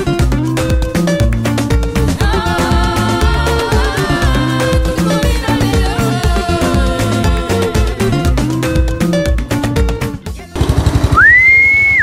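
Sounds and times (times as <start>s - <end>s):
lawnmower engine running: 10.5s - 12.0s
whistle: 11.1s - 12.0s.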